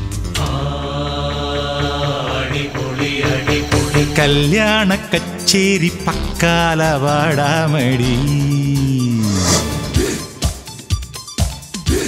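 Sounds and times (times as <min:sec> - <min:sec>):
backing music with light beat: 0:00.3 - 0:12.0
person singing a long note: 0:06.0 - 0:09.2.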